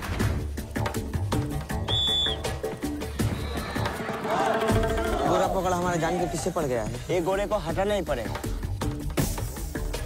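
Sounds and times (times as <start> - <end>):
trailer music with percussive beat: 0.0 - 10.0
whistle blast: 1.8 - 2.6.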